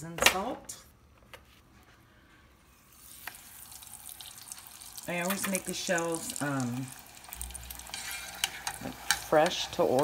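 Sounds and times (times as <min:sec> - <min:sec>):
tortilla sizzling in oil: 0:02.8 - 0:10.0.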